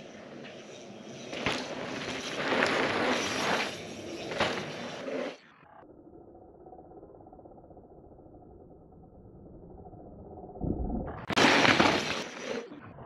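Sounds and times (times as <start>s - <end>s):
bike landing thud: 4.3s - 4.8s, 11.3s - 12.4s.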